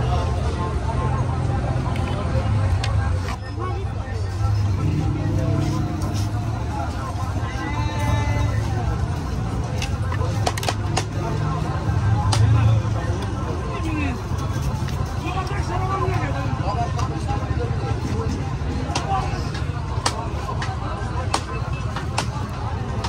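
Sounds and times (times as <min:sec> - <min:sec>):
low rumble of traffic: 0:00.0 - 0:23.0
people talking: 0:00.0 - 0:23.0.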